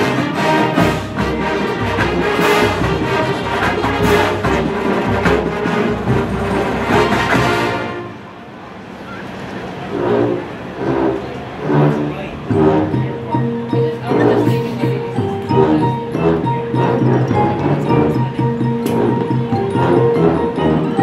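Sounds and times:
marching band playing: 0:00.0 - 0:21.0.

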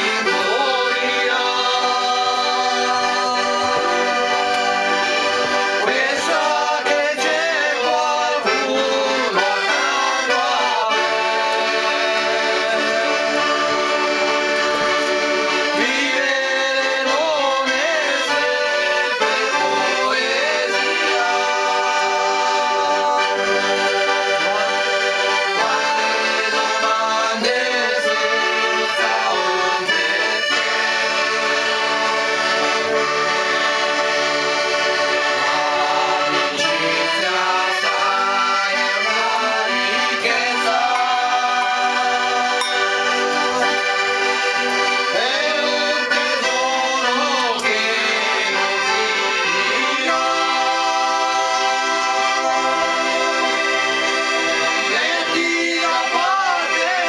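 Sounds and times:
accordion playing folk tune: 0:00.0 - 0:57.0.

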